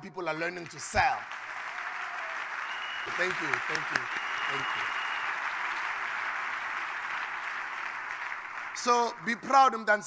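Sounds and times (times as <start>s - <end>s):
audience applauding: 0.4s - 9.8s.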